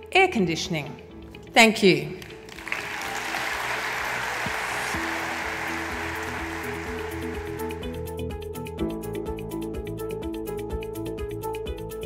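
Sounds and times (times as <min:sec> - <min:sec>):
music with held notes: 0:02.2 - 0:12.0
audience applause: 0:02.4 - 0:07.9.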